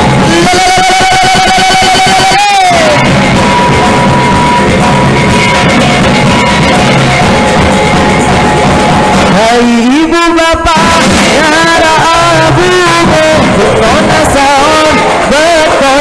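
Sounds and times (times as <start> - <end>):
bamboo percussion: 0.0 - 10.0, 10.7 - 16.0
drums: 0.0 - 16.0.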